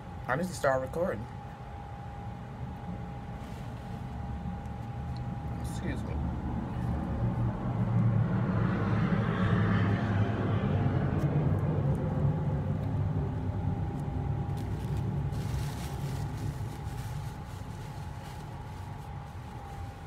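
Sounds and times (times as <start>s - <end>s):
distant engine rumble: 2.1s - 20.0s.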